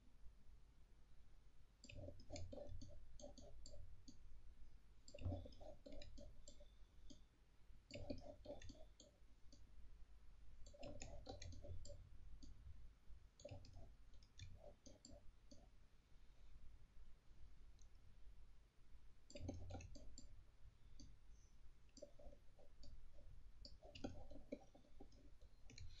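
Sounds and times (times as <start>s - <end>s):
faint computer mouse clicking: 1.8s - 4.2s, 5.0s - 7.3s, 7.9s - 9.7s, 10.6s - 12.6s, 13.4s - 15.7s, 19.2s - 26.0s.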